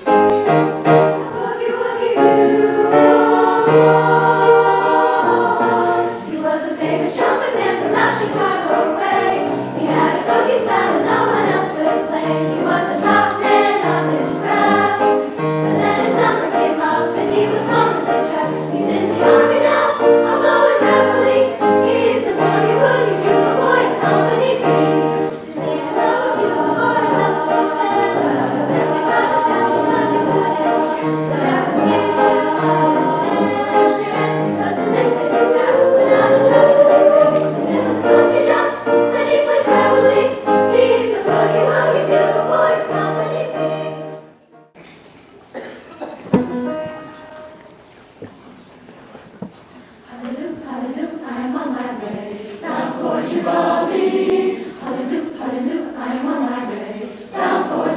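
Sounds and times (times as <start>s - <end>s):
choir singing in harmony: 0.0s - 44.7s, 50.0s - 57.9s.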